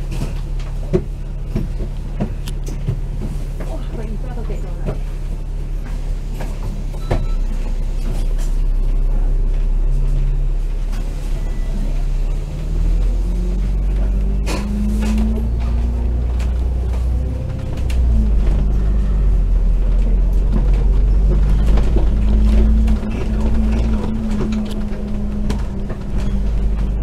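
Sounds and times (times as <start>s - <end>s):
bus diesel engine droning: 0.0s - 27.0s.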